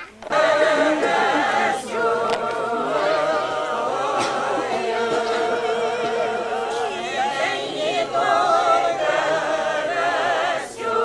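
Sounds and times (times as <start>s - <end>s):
men and women singing a cappella: 0.2s - 11.0s.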